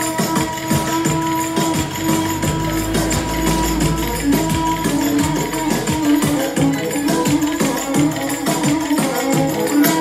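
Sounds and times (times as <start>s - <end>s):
folk melody held notes: 0.0s - 10.0s.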